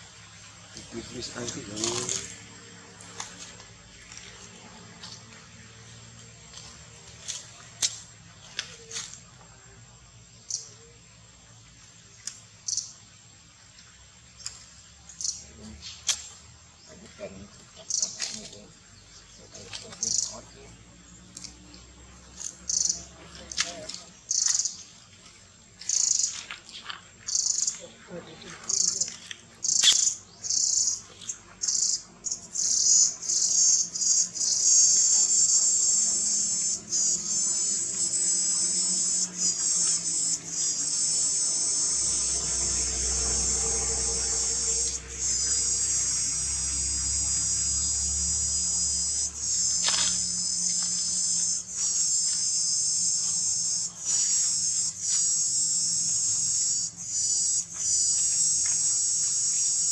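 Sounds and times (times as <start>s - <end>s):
insects calling high-pitched: 0.0s - 59.9s.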